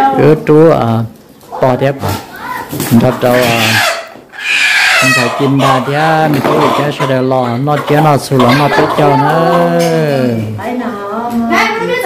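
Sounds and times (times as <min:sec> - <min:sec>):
chicken squawking: 0:01.6 - 0:09.8
chicken calling: 0:01.6 - 0:10.1.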